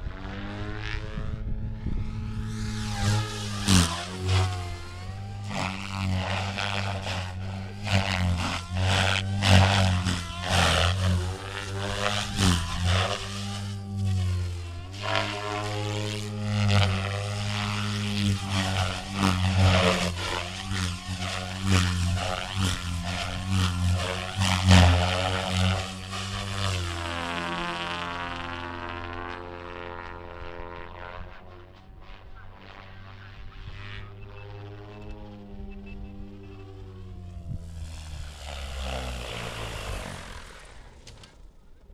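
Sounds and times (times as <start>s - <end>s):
helicopter rotor droning hum: 0.0s - 41.9s
rotor blade whooshes: 0.2s - 27.2s, 35.7s - 41.5s.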